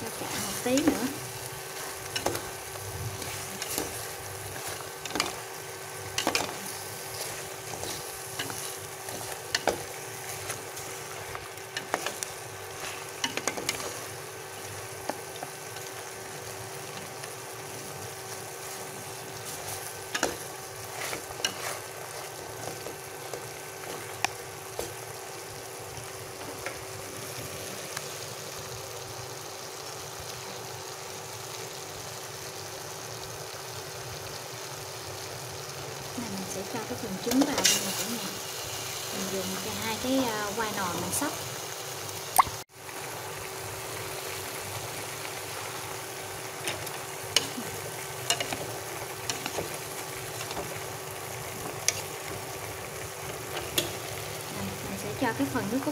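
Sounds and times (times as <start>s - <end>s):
meat sizzling in a pot: 0.0s - 55.9s.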